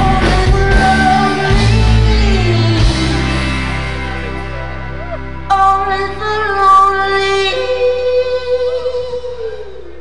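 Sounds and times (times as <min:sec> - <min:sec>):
rock band playing: 0:00.0 - 0:08.6.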